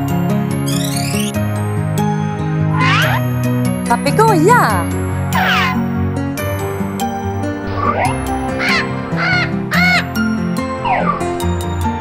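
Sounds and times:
background music: 0.0 - 12.0
cartoon parrot squawking: 2.8 - 3.2, 5.4 - 5.8, 8.6 - 10.1.

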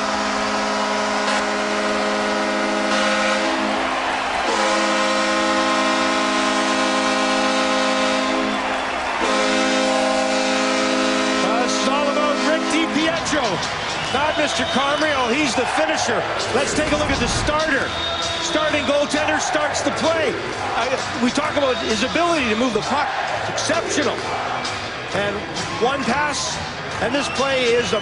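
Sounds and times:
goal horn blasts: 0.0 - 3.8, 4.4 - 13.2
crowd cheering: 0.0 - 28.0.

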